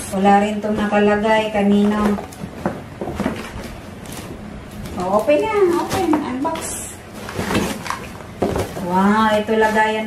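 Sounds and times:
paper bag and tissue rustling: 3.3s - 10.0s.

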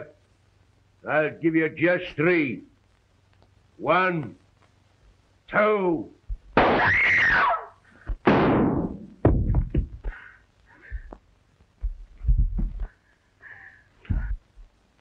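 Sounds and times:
loud gunshot: 6.6s - 7.5s, 8.2s - 9.1s
heavy thuds: 8.1s - 10.2s, 11.8s - 13.0s, 14.0s - 14.4s.

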